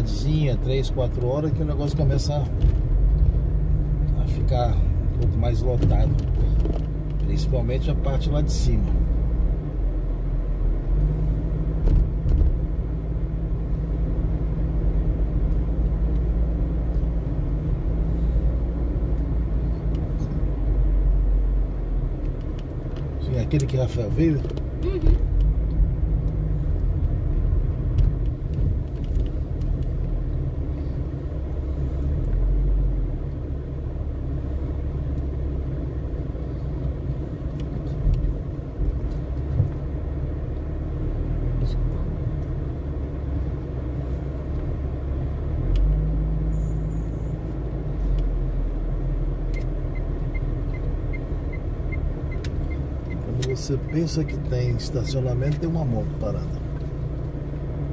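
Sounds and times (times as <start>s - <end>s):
car engine and road noise: 0.0s - 57.9s.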